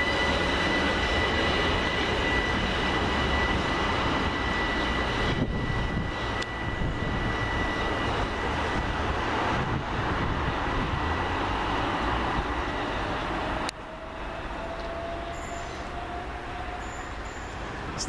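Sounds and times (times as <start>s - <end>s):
electric train whine: 0.0s - 18.0s
train running rumble: 0.0s - 18.0s.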